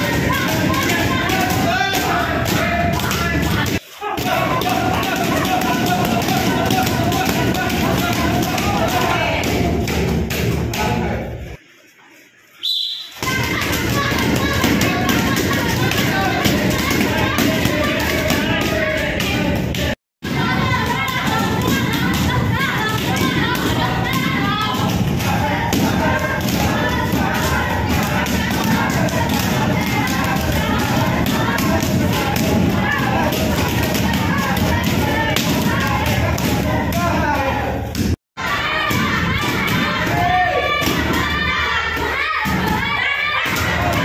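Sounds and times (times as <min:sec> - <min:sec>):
background voices in a hall: 0:00.0 - 0:44.0.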